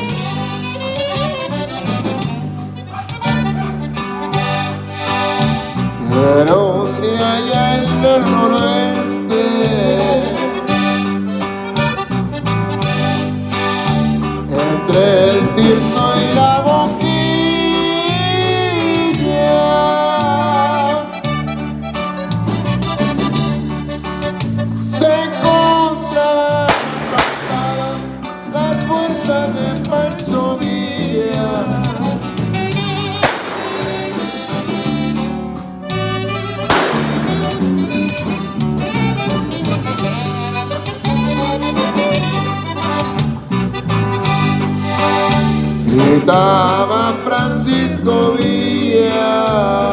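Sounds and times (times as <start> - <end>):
accordion melody: 0.0 - 49.9
guitar and bass beat: 0.0 - 49.9.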